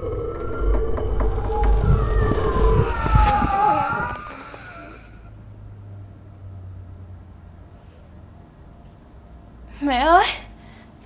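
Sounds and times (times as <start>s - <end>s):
deep low rumble: 0.0s - 5.4s
eerie wailing tones: 0.0s - 5.4s.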